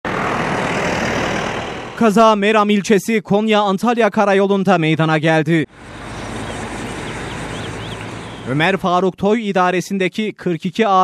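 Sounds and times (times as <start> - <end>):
roadside traffic rushing: 0.0 - 2.4, 5.6 - 9.0.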